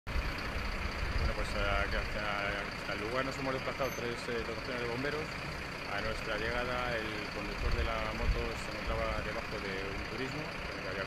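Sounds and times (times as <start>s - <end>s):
vehicle engine idling: 0.1s - 11.0s
man talking: 1.2s - 11.0s.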